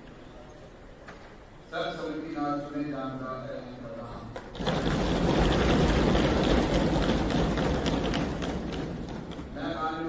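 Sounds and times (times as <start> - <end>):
crowd clapping: 4.6 - 9.5.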